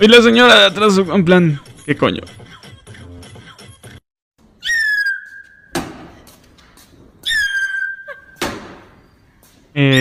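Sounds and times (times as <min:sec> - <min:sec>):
high-pitched squeak: 0:04.6 - 0:05.8, 0:07.2 - 0:08.4.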